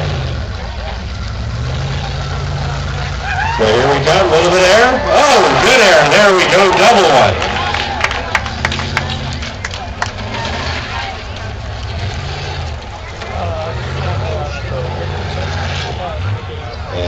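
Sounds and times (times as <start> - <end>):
car engine revving: 0.0 - 17.0.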